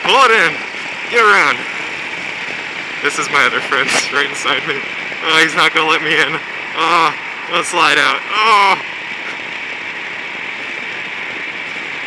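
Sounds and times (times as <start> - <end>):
kart engine running: 0.0 - 7.1
wind on microphone: 0.4 - 12.0.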